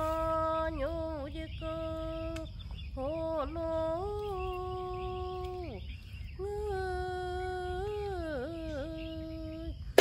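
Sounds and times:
person humming a slow melody: 0:00.0 - 0:10.0.

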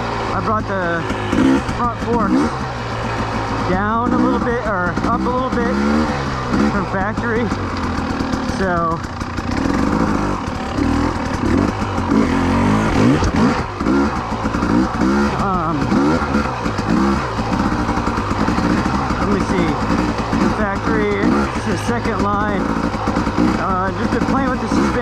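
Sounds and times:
two-stroke motorcycle engine: 0:00.0 - 0:25.0.

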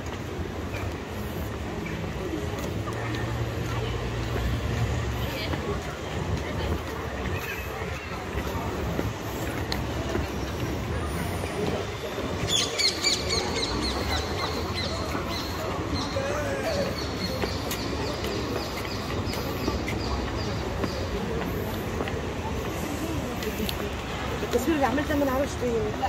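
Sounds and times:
low traffic rumble: 0:00.0 - 0:26.0
passers-by talking: 0:00.0 - 0:26.0.

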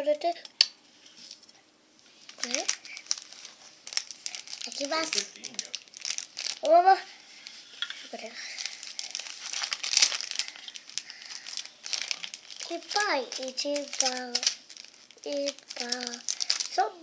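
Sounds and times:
child's voice: 0:00.0 - 0:00.4, 0:02.4 - 0:02.8, 0:04.6 - 0:05.4, 0:06.6 - 0:07.1, 0:08.0 - 0:08.4, 0:12.6 - 0:14.6, 0:15.2 - 0:17.0
plastic packet crinkling: 0:02.2 - 0:17.0.

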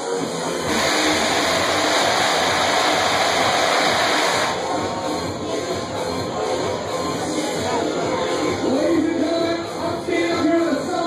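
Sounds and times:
jet cannons hissing loudly: 0:00.6 - 0:04.9.

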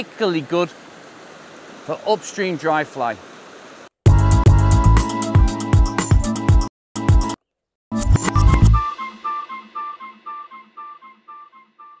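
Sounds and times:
plucked-string outro music: 0:07.0 - 0:12.0.

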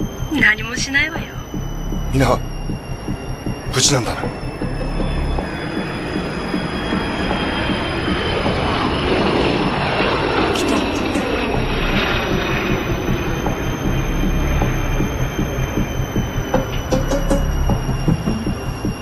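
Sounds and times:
thin steady high tones: 0:00.0 - 0:19.0.

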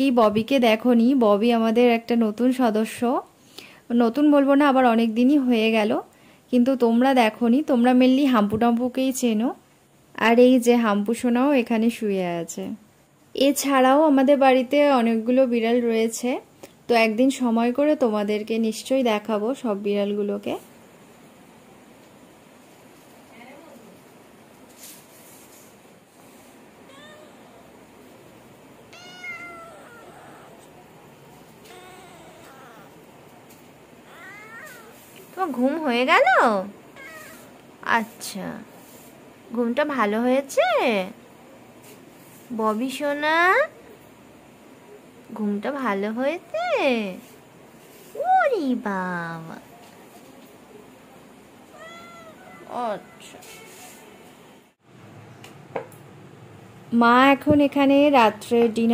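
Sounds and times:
cat meowing: 0:26.9 - 0:27.8, 0:28.9 - 0:30.8, 0:31.6 - 0:33.1, 0:34.1 - 0:35.1, 0:37.0 - 0:37.6, 0:51.7 - 0:53.9.

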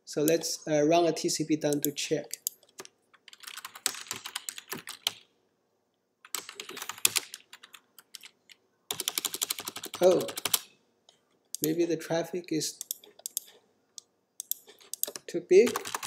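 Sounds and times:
typing on computer keyboard: 0:01.7 - 0:05.2, 0:06.2 - 0:10.7, 0:12.8 - 0:13.6, 0:14.4 - 0:16.0.

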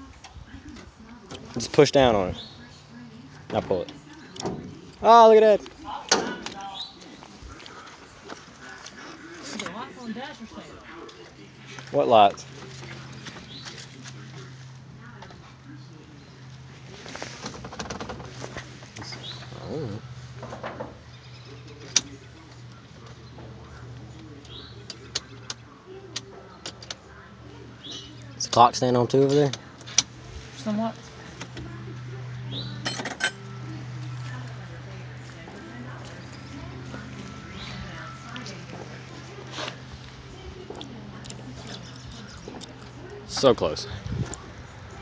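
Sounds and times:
car engine idling: 0:00.0 - 0:45.0.

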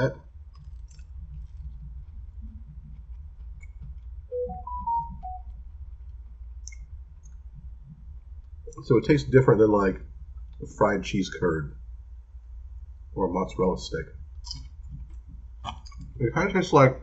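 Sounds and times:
steady low hum: 0:00.0 - 0:17.0
pitched tones stepping up and down: 0:04.3 - 0:05.6.

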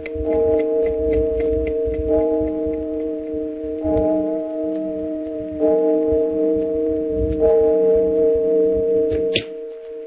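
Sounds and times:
clock ticking: 0:00.0 - 0:06.4
sustained music chords: 0:00.0 - 0:10.0.

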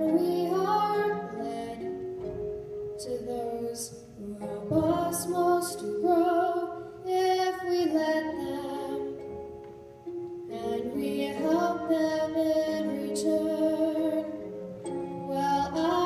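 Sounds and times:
young women singing a ballad: 0:00.0 - 0:02.0, 0:03.0 - 0:09.3, 0:10.5 - 0:14.5, 0:15.2 - 0:16.0
steady musical accompaniment: 0:00.0 - 0:16.0.

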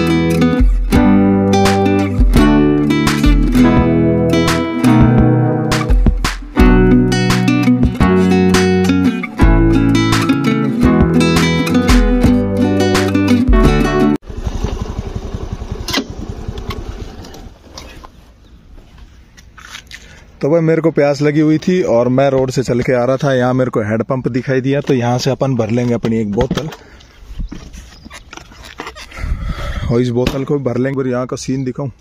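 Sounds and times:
motor scooter engine putter: 0:14.3 - 0:18.1.

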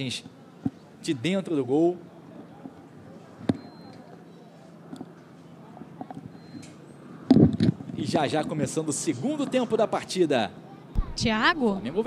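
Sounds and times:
faint open-air ambience: 0:00.0 - 0:12.0.

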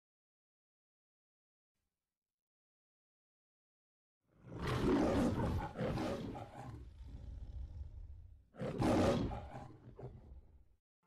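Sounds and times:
lion roar: 0:04.4 - 0:10.6.

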